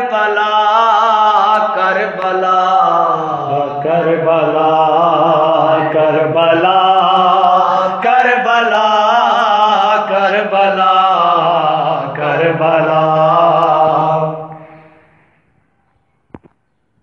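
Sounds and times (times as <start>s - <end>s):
man chanting a lament: 0.0s - 14.8s.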